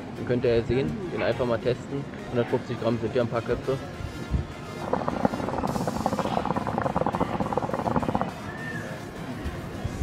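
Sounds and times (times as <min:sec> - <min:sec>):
water pipe bubbling: 0:04.8 - 0:08.4.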